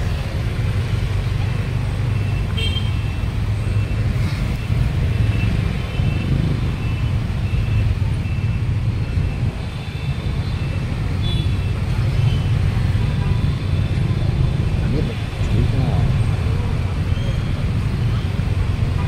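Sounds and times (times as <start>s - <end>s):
street traffic rumble: 0.0s - 19.0s.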